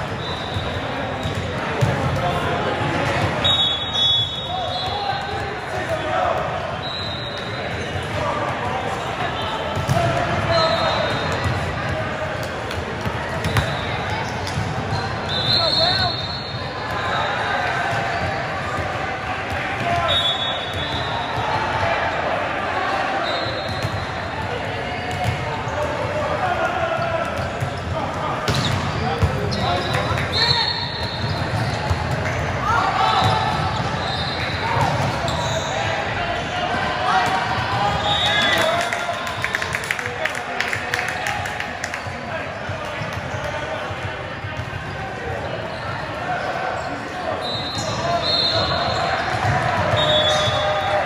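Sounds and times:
shoe squeals: 0.0s - 1.6s, 3.4s - 5.5s, 6.7s - 11.6s, 13.3s - 18.6s, 19.8s - 22.3s, 23.0s - 24.3s, 26.8s - 39.5s, 44.3s - 51.0s
voices and calls in a hall: 0.0s - 51.0s
balls thudding on court floor: 1.2s - 2.3s.

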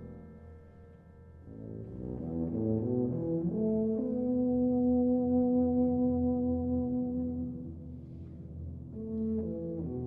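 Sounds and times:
tuba playing: 1.5s - 8.0s, 8.8s - 10.0s
wind ensemble: 1.8s - 10.0s.

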